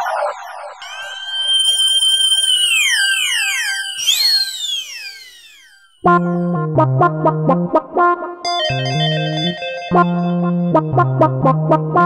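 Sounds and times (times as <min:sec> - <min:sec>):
bright rising sweep: 0:00.0 - 0:06.0
synthesized tones sliding down: 0:00.0 - 0:06.1
warbling tone: 0:00.0 - 0:06.2.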